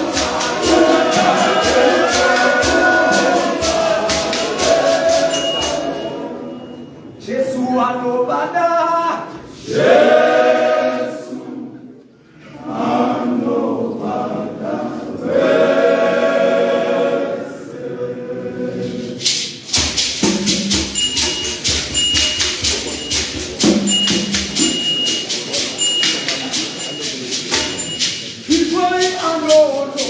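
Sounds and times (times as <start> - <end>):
hand shaker beat: 0.0 - 6.4, 18.8 - 30.0
men's choir singing in harmony: 0.0 - 7.6, 9.3 - 19.6.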